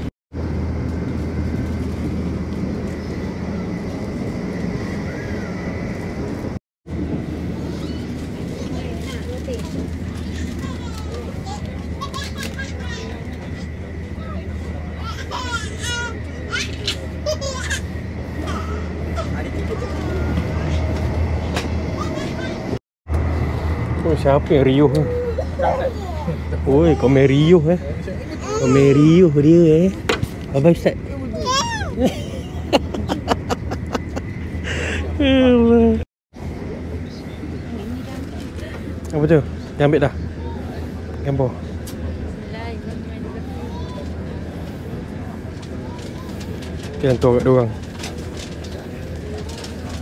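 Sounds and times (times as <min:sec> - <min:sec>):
train cabin rumble and hum: 0:00.0 - 0:50.0
faint passenger chatter: 0:01.0 - 0:50.0.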